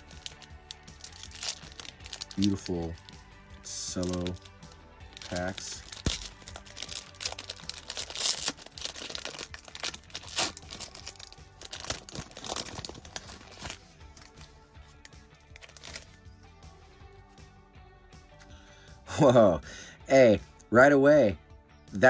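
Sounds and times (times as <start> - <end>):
foil wrapper tearing and crinkling: 0.0 - 3.2, 3.8 - 16.2
background music: 0.0 - 22.0.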